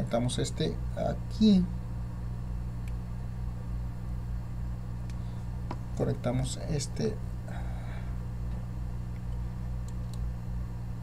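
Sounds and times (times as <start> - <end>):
low electrical hum: 0.0 - 11.0
faint test clip clicks: 9.1 - 10.3.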